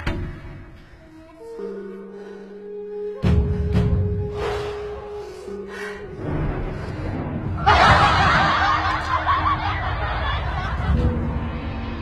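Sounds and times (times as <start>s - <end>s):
background music: 0.0s - 12.0s
crowd laughing: 7.6s - 11.6s.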